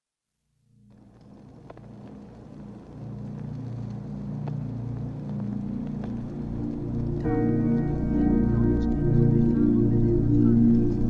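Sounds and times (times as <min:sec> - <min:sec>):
faint hiss: 0:00.8 - 0:11.0
low rumbling drone: 0:01.0 - 0:11.0.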